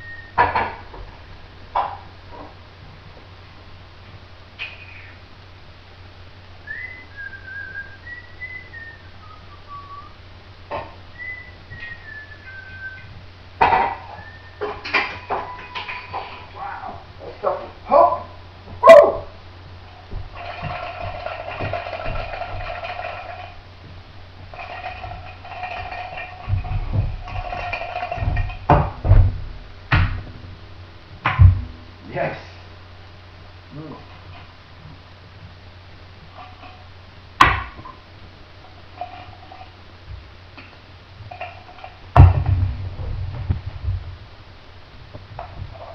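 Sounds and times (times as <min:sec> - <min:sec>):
person whistling a tune: 0:00.0 - 0:00.4, 0:06.6 - 0:10.2, 0:11.1 - 0:13.1, 0:14.1 - 0:14.6
bottles and glassware clinking: 0:13.6 - 0:16.5
dull thumps: 0:19.6 - 0:32.1, 0:42.1 - 0:44.4.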